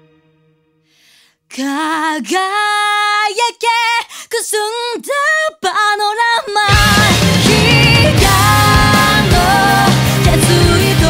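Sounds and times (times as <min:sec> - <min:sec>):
woman singing: 0:01.5 - 0:11.0.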